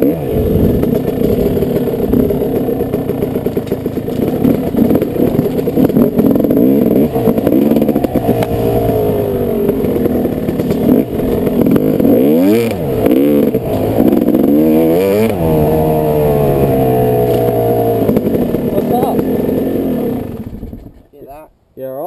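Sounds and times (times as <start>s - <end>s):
dirt bike engine revving: 0.0s - 21.0s.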